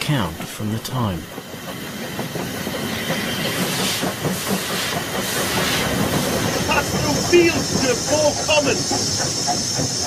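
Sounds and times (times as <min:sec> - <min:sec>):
steam hissing: 0:00.0 - 0:10.0
train wheels rattling: 0:00.0 - 0:10.0.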